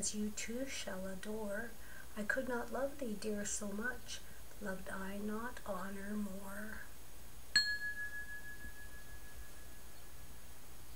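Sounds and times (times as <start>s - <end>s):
high clear chime ringing: 7.6s - 10.0s.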